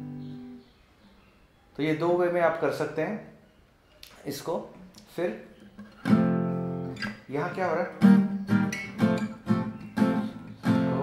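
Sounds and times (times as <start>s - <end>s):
acoustic guitar chord strummed: 0.0s - 0.6s, 5.7s - 11.0s.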